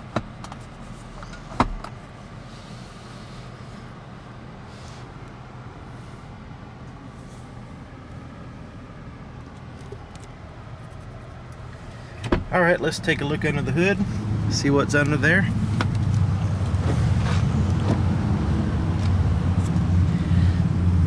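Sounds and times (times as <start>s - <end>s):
low hum in car cabin: 0.0s - 21.0s.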